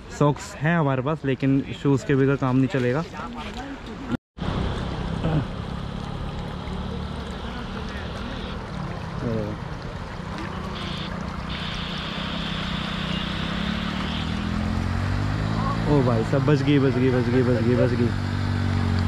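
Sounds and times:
rushing water: 2.9s - 19.0s
motorcycle engine running: 10.6s - 19.0s.

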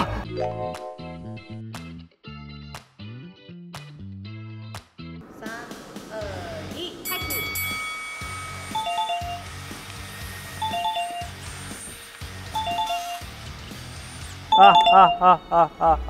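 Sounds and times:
two-note chime: 7.1s - 9.9s.

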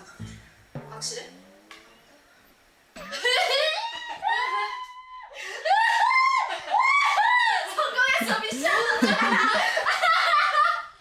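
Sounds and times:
woman laughing: 3.0s - 10.9s.

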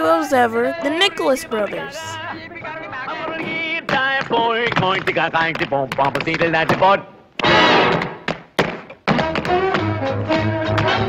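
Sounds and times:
tap shoes clicking and thudding: 2.6s - 9.9s
big-band swing music: 9.1s - 11.0s.

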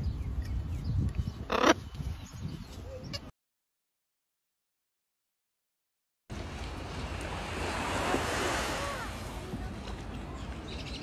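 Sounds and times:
macaw squawk: 1.5s - 1.8s.

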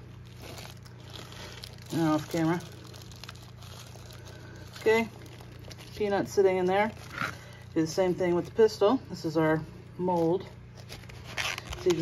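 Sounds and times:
plastic bag crinkling: 0.0s - 9.2s, 9.8s - 12.0s.

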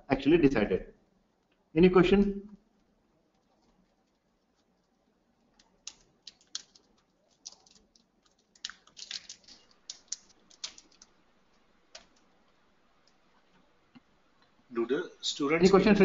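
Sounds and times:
keyboard typing: 3.3s - 12.4s.

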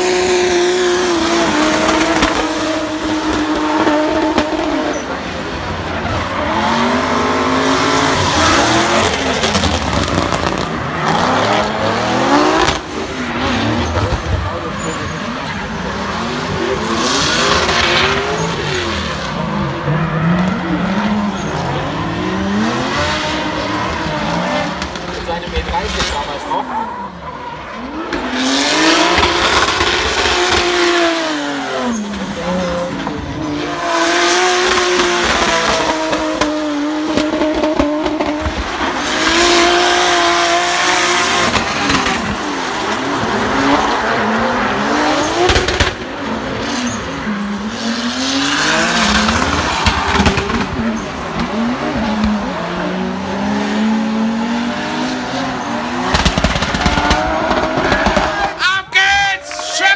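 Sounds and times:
car engine revving: 0.0s - 58.6s.

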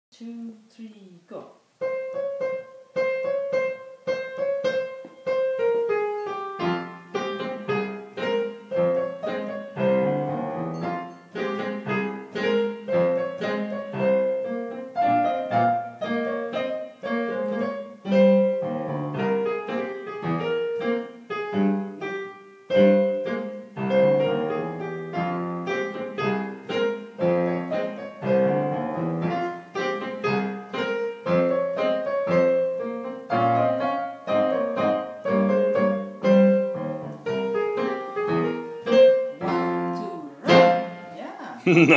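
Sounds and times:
piano duet: 1.8s - 41.7s.

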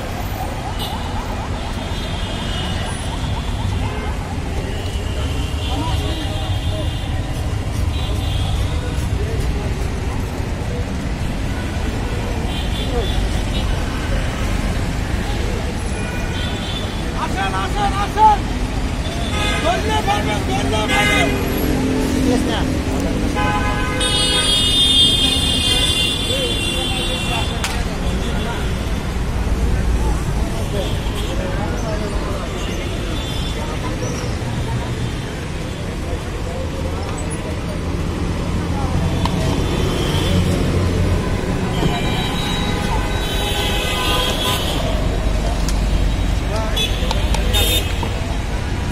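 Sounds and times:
people's voices: 0.0s - 48.9s
traffic rumble: 0.0s - 48.9s.

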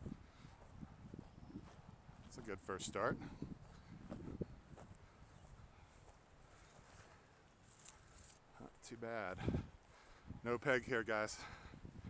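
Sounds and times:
short rustle: 6.6s - 8.5s.

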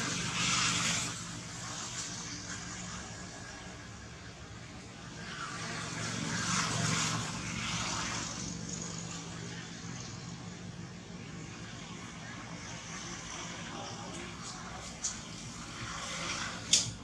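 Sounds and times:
passing vehicle engine drone: 0.0s - 17.0s.

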